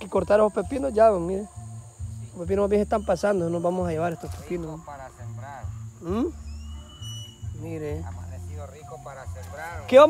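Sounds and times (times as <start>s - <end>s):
person making wordless sounds: 6.0s - 6.4s.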